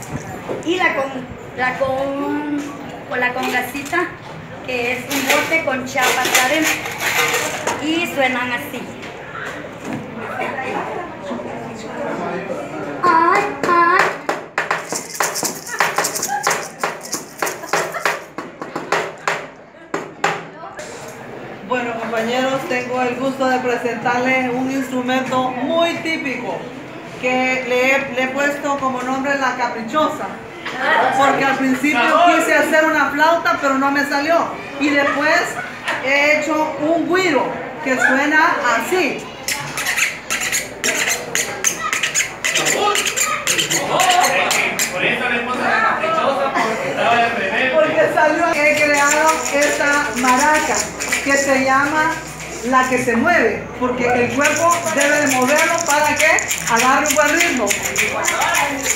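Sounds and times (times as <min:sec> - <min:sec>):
stick scraping paper tube guiro: 0:06.0 - 0:07.7, 0:14.7 - 0:18.3, 0:39.4 - 0:45.0, 0:48.6 - 0:53.0, 0:54.3 - 0:58.9
small maraca rattling: 0:14.7 - 0:18.4, 0:39.4 - 0:45.0, 0:48.5 - 0:53.2, 0:54.2 - 0:58.9.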